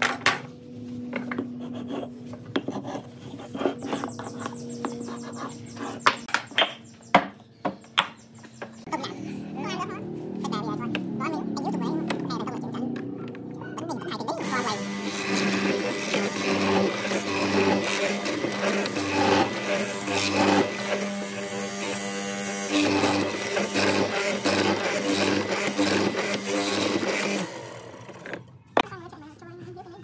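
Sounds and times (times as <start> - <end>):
mortiser motor cutting wood: 1.1 - 6.6, 8.7 - 28.6.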